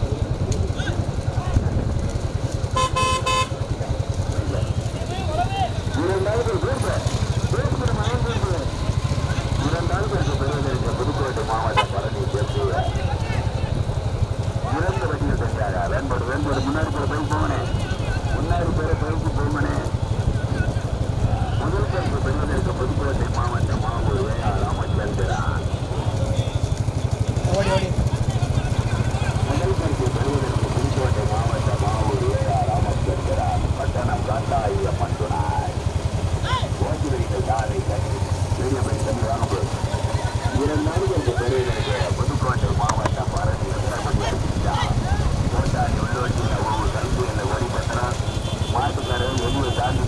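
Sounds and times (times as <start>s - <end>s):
vehicle engine running: 0.0s - 50.0s
indistinct voices: 3.4s - 50.0s.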